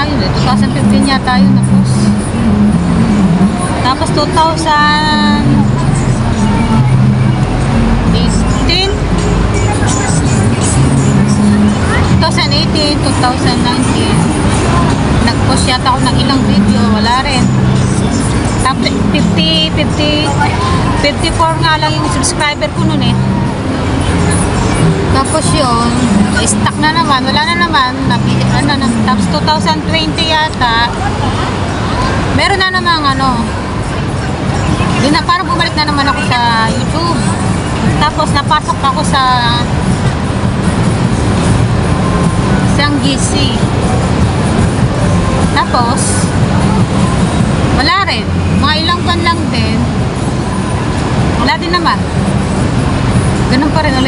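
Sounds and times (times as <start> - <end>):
city traffic noise: 0.0 - 54.0
vehicle engine running: 0.0 - 54.0.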